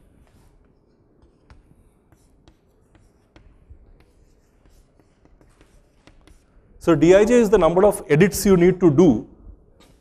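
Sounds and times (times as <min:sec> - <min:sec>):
chalk tapping and scraping: 0:00.0 - 0:07.8, 0:09.8 - 0:10.0.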